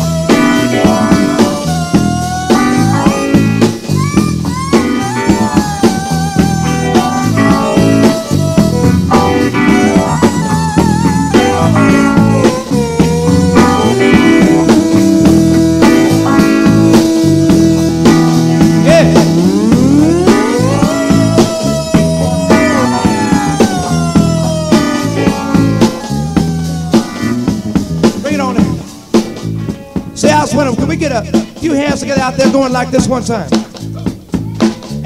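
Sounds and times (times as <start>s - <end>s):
wavering lead melody: 0.0s - 30.8s
bass guitar: 0.0s - 35.0s
drum kit: 0.0s - 35.0s.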